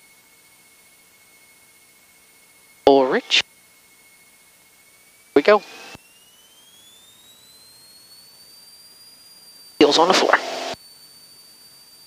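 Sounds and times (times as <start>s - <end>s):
high-pitched engine whine: 0.0s - 12.0s.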